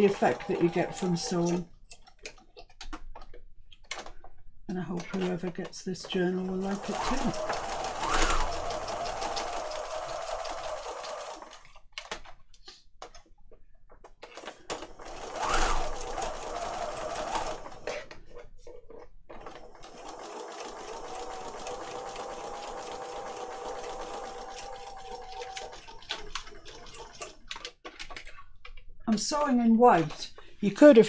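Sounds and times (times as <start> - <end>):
sewing machine stitching: 0.0 - 1.8, 5.0 - 12.3, 14.2 - 18.4, 19.3 - 28.4
sewing machine clicks: 0.0 - 4.2, 6.1 - 13.3, 14.1 - 18.3, 19.3 - 29.2.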